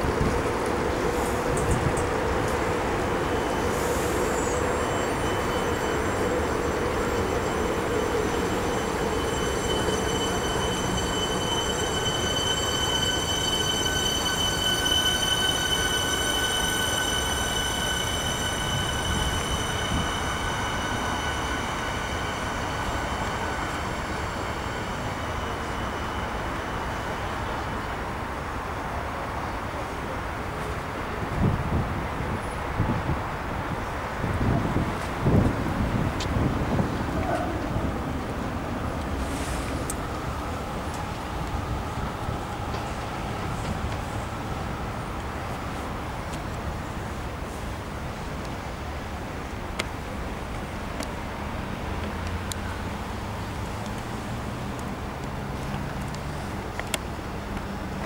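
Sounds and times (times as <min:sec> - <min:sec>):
high whining tones of electric train: 0:00.0 - 0:58.0
train wheels rumbling: 0:00.0 - 0:58.0.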